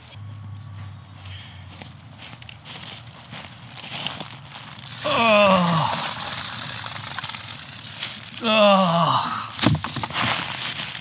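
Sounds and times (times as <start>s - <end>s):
footsteps on dry leaves: 0.0s - 11.0s.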